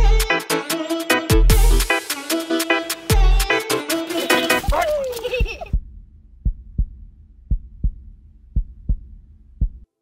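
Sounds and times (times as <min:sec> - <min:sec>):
heartbeat thumps: 0:05.4 - 0:09.9
faint low hum: 0:05.8 - 0:10.0.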